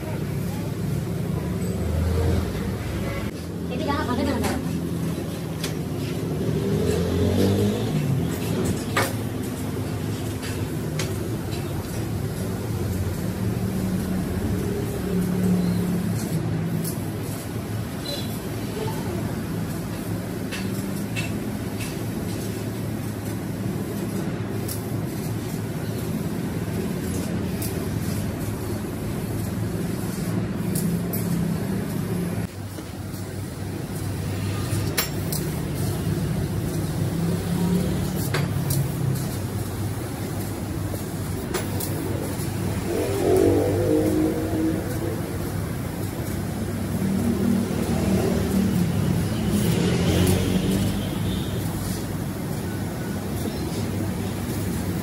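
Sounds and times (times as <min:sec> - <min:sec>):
laser cutting machine drone: 0:09.5 - 0:20.6, 0:21.2 - 0:55.0.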